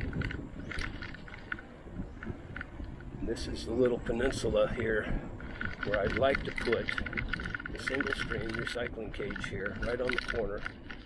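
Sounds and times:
bike rolling on concrete road: 0.0 - 11.0
light clicks and rattles: 0.0 - 11.0
wind on microphone: 0.0 - 11.0.

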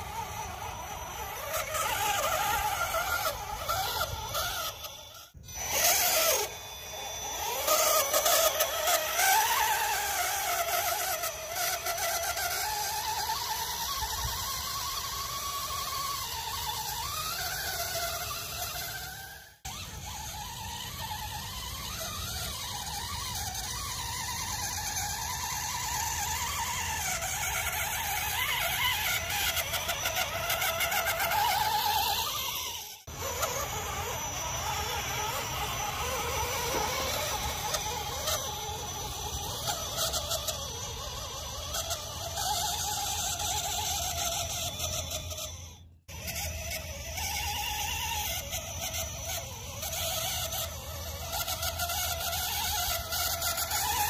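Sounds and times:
toy truck electric motor whining: 0.0 - 54.0.

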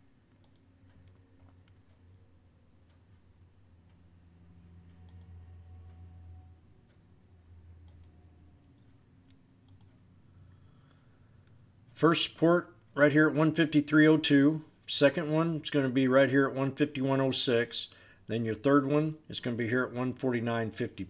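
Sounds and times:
low steady hum: 0.0 - 21.0
computer mouse clicks: 0.3 - 1.9, 4.9 - 5.5, 7.8 - 9.0, 9.6 - 10.0.

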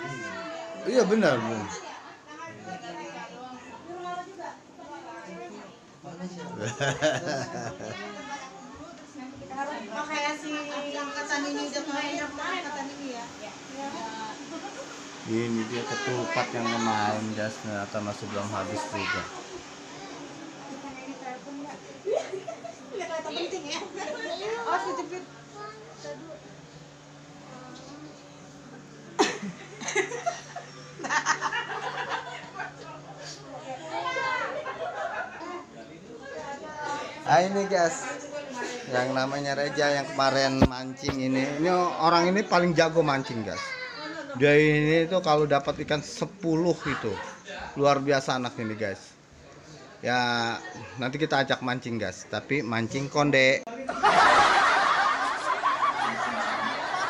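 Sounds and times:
group of people laughing: 6.5 - 8.2, 29.2 - 32.9, 34.4 - 35.7, 53.8 - 57.0.

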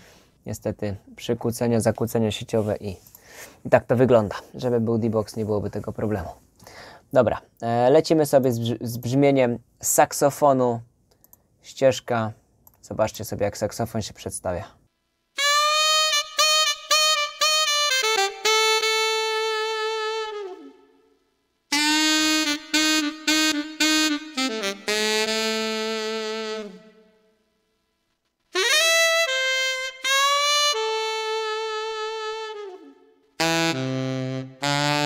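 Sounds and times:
keyboard saxophone phrases: 15.4 - 21.1, 21.7 - 27.2, 28.6 - 35.0.

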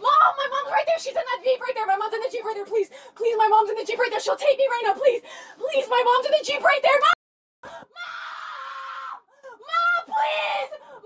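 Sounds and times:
woman screaming: 7.9 - 11.0.

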